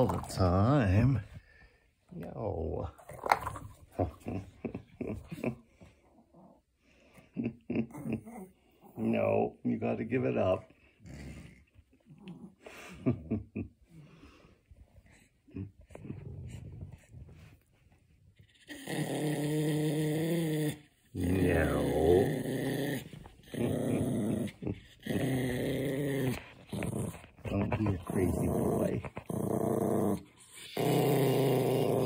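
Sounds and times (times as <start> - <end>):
dog growling: 7.4 - 9.4, 10.8 - 13.4, 15.0 - 17.7, 18.4 - 32.0.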